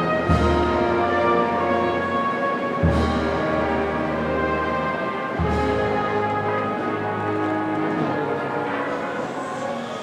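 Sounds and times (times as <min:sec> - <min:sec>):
brass band playing a march: 0:00.0 - 0:10.0.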